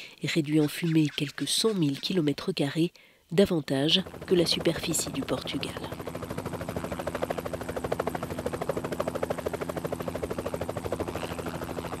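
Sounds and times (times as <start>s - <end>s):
helicopter rotor chopping: 3.8s - 12.0s
helicopter engine hum: 3.9s - 12.0s.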